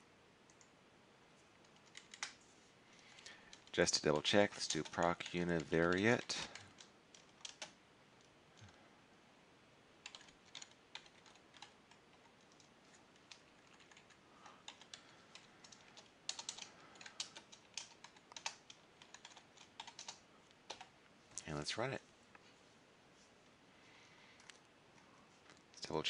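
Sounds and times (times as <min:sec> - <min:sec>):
keyboard typing: 0:01.6 - 0:02.4, 0:03.1 - 0:07.8, 0:10.0 - 0:21.0.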